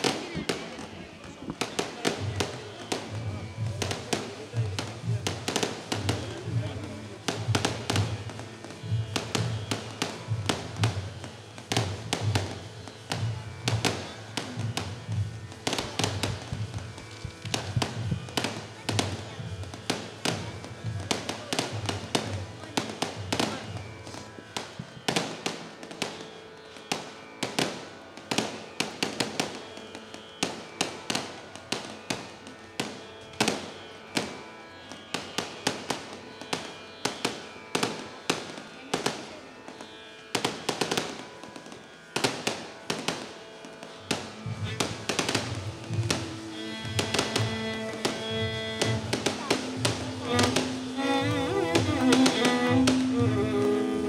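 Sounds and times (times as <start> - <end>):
fireworks cracks and bangs: 0.0 - 26.3, 26.9 - 34.4, 35.1 - 39.4, 40.3 - 54.0.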